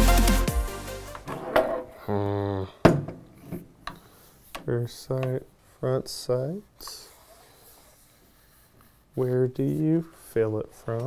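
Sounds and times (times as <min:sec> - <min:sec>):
electronic dance music: 0:00.0 - 0:01.2
person humming: 0:02.0 - 0:02.8.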